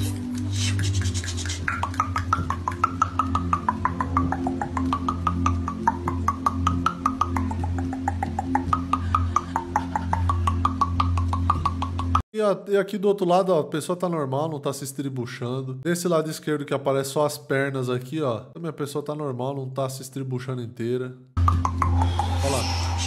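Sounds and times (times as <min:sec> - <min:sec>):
music with low drone: 0:00.0 - 0:12.2, 0:21.4 - 0:23.0
hand tapping on chest: 0:00.6 - 0:12.2
wavering higher tone: 0:01.0 - 0:09.8.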